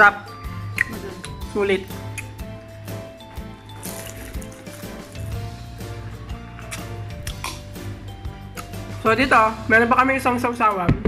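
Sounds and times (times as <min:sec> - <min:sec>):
background music with bass: 0:00.0 - 0:11.0.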